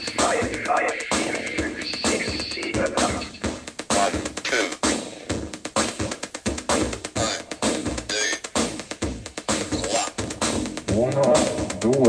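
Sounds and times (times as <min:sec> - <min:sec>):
electronic music with drum beat: 0:00.0 - 0:12.0.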